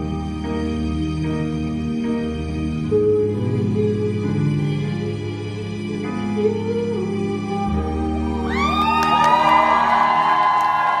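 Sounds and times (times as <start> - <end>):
song accompaniment held notes: 0.0 - 11.0
audience cheering and whooping: 8.4 - 11.0.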